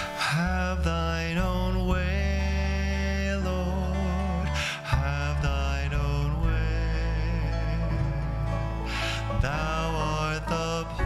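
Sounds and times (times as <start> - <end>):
slow hymn on guitars and banjo: 0.0 - 11.0.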